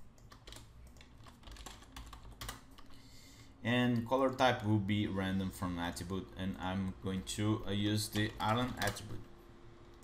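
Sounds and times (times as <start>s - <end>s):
faint keyboard typing: 0.0s - 3.0s, 3.8s - 4.6s, 6.8s - 9.3s.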